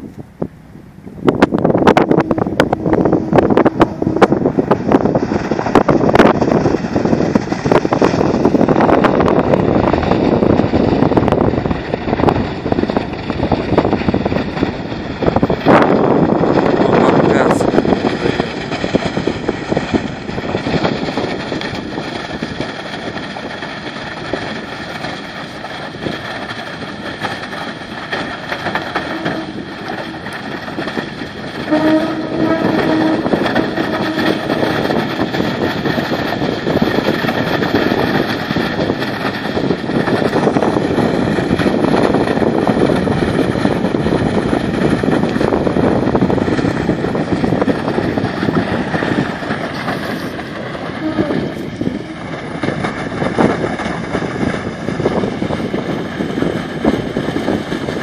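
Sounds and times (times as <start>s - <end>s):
vehicle engine hum: 0.0s - 58.0s
wind rushing on microphone: 0.0s - 58.0s.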